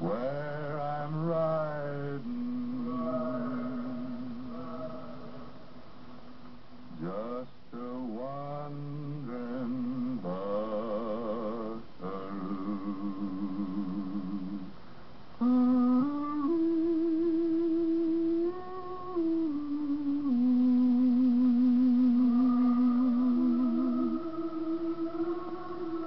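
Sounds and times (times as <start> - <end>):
person humming a slow melody: 0.0 - 5.7, 6.9 - 14.8, 15.4 - 26.0.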